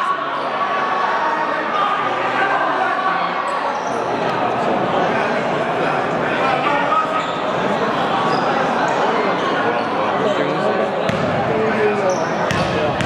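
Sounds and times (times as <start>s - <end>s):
spectators chattering: 0.0s - 13.0s
basketball bouncing on wooden court: 11.1s - 11.4s, 12.5s - 13.0s.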